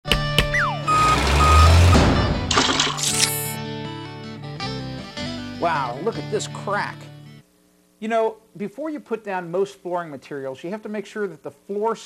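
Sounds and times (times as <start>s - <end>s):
short beeps: 0.9s - 3.3s.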